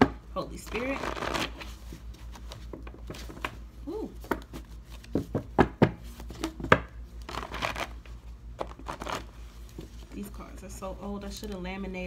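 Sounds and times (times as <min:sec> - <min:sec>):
paper cards shuffling: 0:06.1 - 0:10.2.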